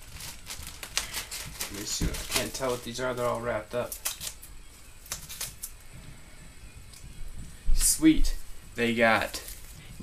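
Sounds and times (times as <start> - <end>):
packaging rustling: 0.0 - 5.8.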